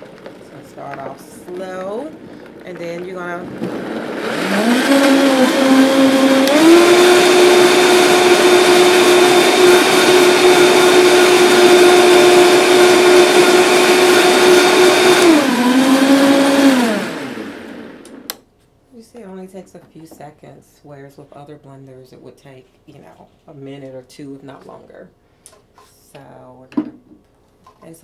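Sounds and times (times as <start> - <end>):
blender motor blending: 0.0 - 18.3
click: 18.0 - 18.4.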